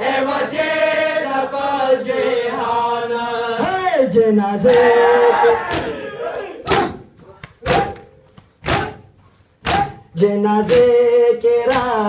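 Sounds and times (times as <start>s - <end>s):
men chanting together: 0.0s - 8.0s
hands slapping chests: 5.7s - 10.1s, 10.7s - 11.0s, 11.7s - 12.0s.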